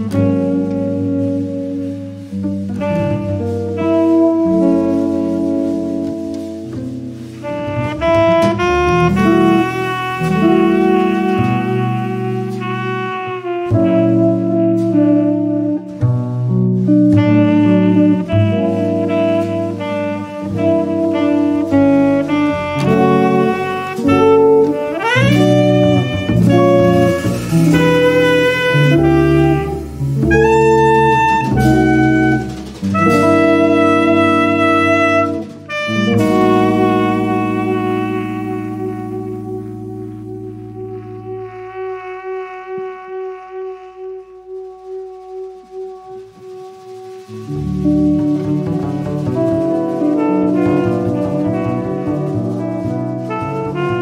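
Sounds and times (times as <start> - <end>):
jazz quartet playing: 0.0 - 54.0
tenor saxophone melody: 0.0 - 54.0.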